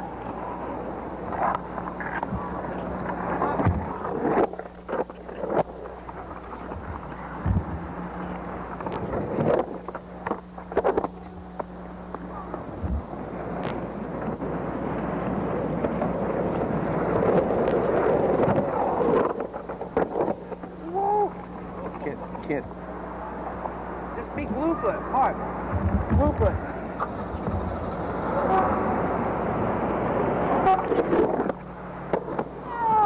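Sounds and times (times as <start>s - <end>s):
skateboard rolling on pavement: 0.0s - 33.0s
tape hum: 0.0s - 33.0s.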